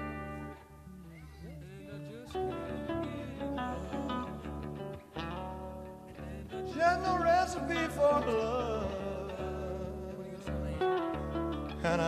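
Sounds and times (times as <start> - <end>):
guitar chords: 0.0 - 12.0.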